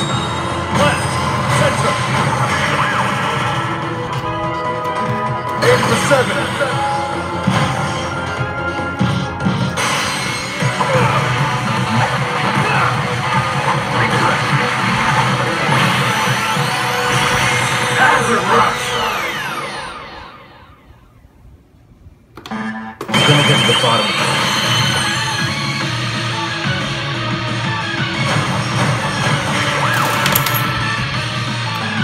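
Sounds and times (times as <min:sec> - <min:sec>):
slot machine bonus music: 0:29.8 - 0:31.0.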